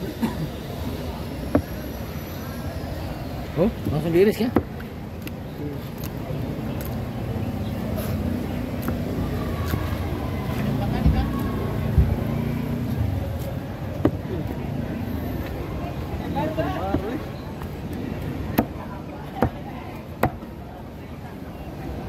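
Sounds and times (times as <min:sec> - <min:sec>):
faint voices: 0:00.0 - 0:22.0
low engine and traffic rumble: 0:00.0 - 0:22.0.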